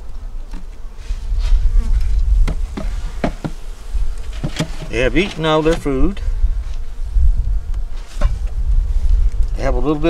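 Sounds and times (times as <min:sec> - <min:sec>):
bees buzzing: 0:00.0 - 0:09.0
wind rumbling on microphone: 0:00.0 - 0:10.0.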